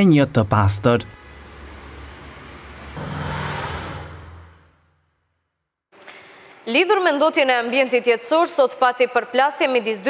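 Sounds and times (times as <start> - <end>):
distant city traffic: 1.1 - 5.0.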